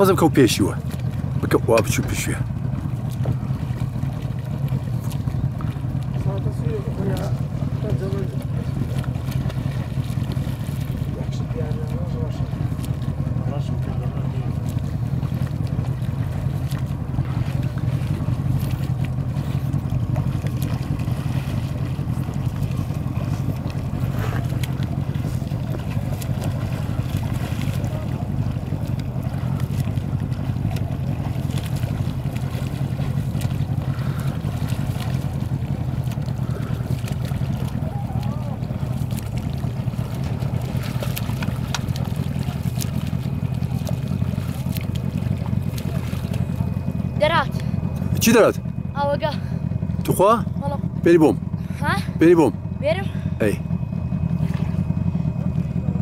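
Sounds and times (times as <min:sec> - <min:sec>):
boat engine running: 0:00.0 - 0:56.0.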